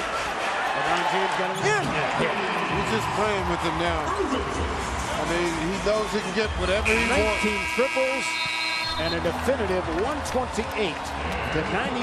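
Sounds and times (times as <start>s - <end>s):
man commentating: 6.0s - 12.0s.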